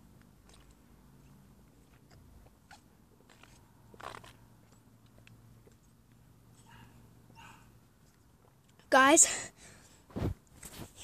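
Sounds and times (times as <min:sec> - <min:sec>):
rustles: 0:09.9 - 0:11.0.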